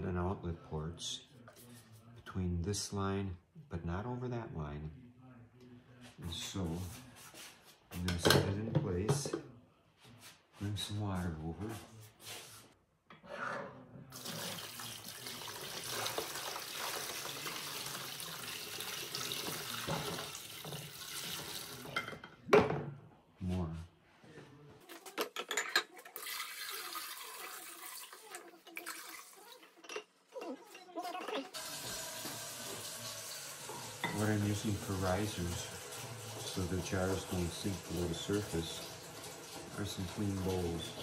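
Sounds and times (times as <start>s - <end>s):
water pouring into plastic tub: 14.2s - 22.0s, 26.1s - 29.6s, 31.6s - 41.0s.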